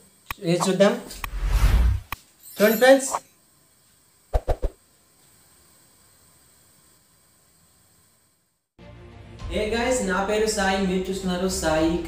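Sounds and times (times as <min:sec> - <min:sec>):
faint steady hiss: 0:00.0 - 0:01.3, 0:02.1 - 0:08.8.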